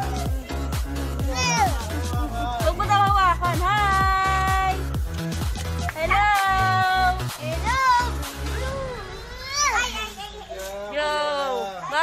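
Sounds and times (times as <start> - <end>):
children chattering: 7.6 - 12.0
child calling: 7.7 - 10.6.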